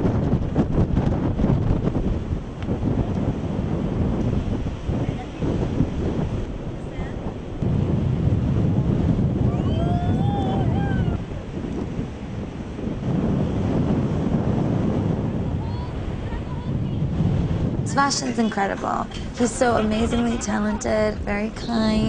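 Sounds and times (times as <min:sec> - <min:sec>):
ocean surf breaking: 0:00.0 - 0:22.0
wind buffeting microphone: 0:00.0 - 0:22.0.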